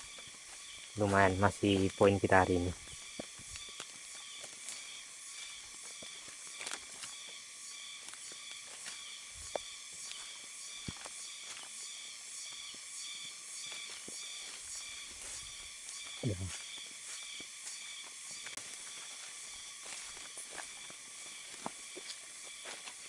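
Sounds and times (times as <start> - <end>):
footsteps on forest floor: 0.0 - 23.0
insect chorus buzzing: 0.0 - 23.0.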